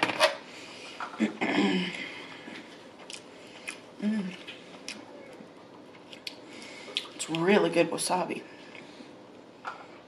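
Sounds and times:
person humming: 4.0s - 4.4s.

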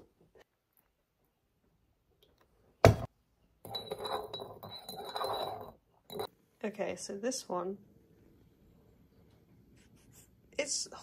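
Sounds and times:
spoon stirring in mug: 3.6s - 6.3s.

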